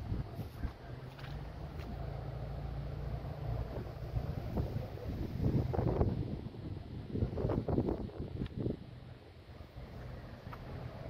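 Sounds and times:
wind buffeting microphone: 0:00.0 - 0:01.0, 0:03.5 - 0:09.0.

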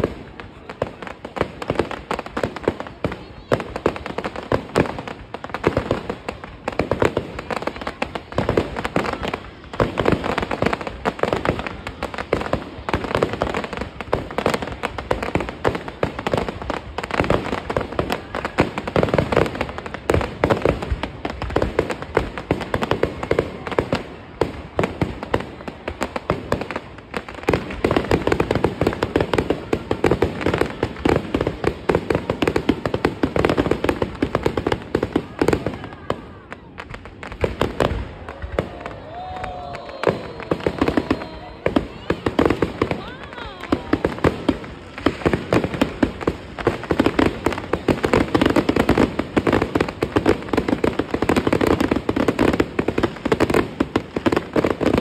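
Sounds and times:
fireworks bursting and crackling: 0:00.0 - 0:55.0.

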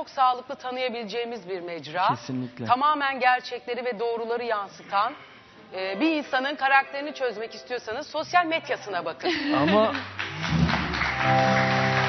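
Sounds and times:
background music: 0:05.8 - 0:12.0
audience clapping: 0:09.5 - 0:12.0.

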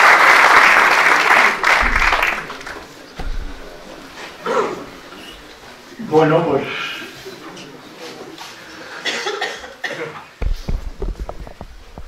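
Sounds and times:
microphone being handled: 0:01.8 - 0:05.6, 0:10.4 - 0:12.0
person coughing: 0:04.4 - 0:04.8, 0:09.0 - 0:10.2.

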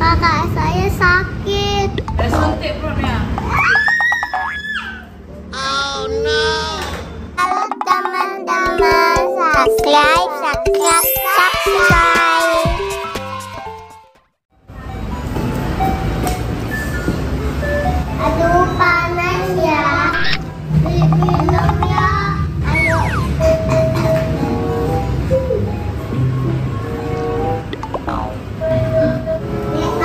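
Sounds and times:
girl squealing: 0:03.5 - 0:05.1, 0:22.6 - 0:23.4
children's intro jingle: 0:07.4 - 0:15.2, 0:20.9 - 0:25.3
simple electronic jingle: 0:22.8 - 0:23.7.

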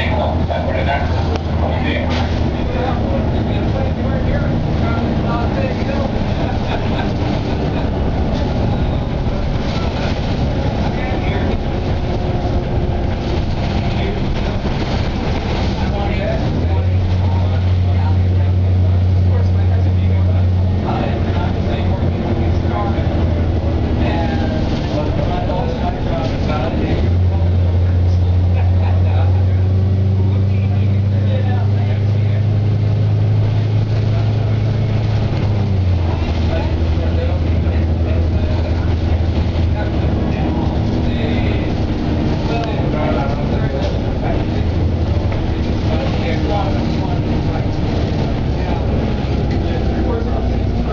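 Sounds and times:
bus engine drone: 0:00.0 - 0:50.9.

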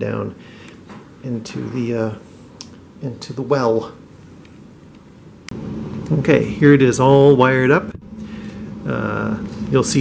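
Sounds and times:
low background noise: 0:00.0 - 0:10.0
low rumble: 0:05.5 - 0:10.0.

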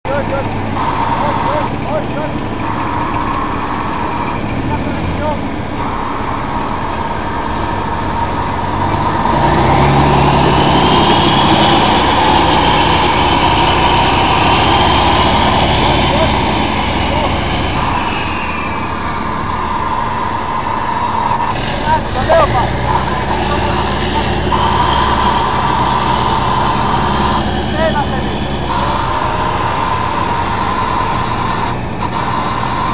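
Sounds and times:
tank engine revving: 0:00.1 - 0:32.9.

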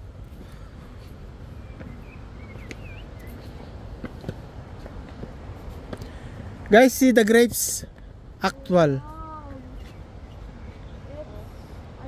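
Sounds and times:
low outdoor rumble: 0:00.0 - 0:12.0
bird chirps: 0:01.6 - 0:03.7.

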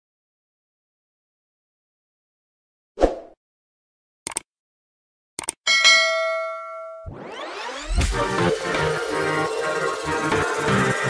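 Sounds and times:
bell-like ding: 0:05.7 - 0:07.1
music: 0:07.1 - 0:11.0.

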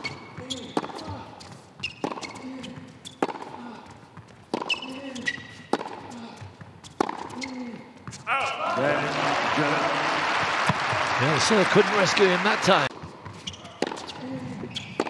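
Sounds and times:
racquet hitting tennis ball: 0:00.0 - 0:01.2, 0:01.8 - 0:02.4, 0:03.1 - 0:03.6, 0:04.4 - 0:06.1, 0:06.9 - 0:07.4, 0:12.9 - 0:15.0
court shoes squeaking: 0:00.0 - 0:08.6, 0:12.9 - 0:15.0.

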